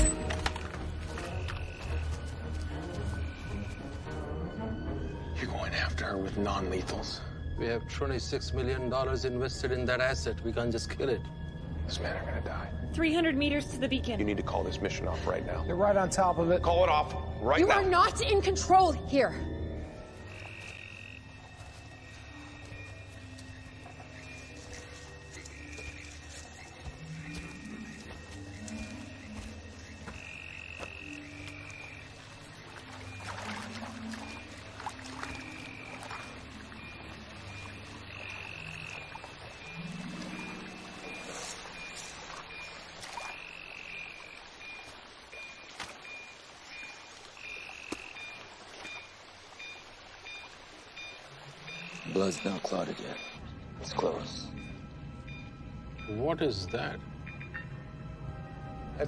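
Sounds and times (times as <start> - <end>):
jungle ambience: 0.0 - 59.0
low slow musical score: 0.0 - 59.0
high chirping call: 35.2 - 53.4.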